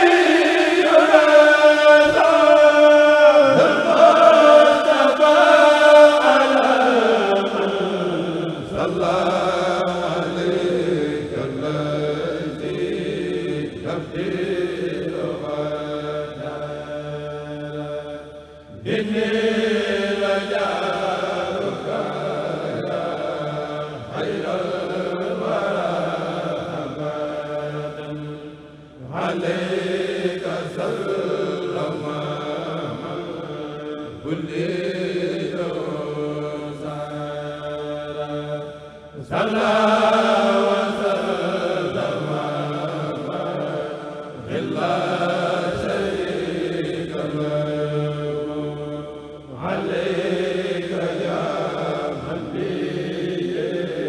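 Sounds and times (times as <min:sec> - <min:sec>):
choir chanting in unison: 0:00.0 - 0:54.0.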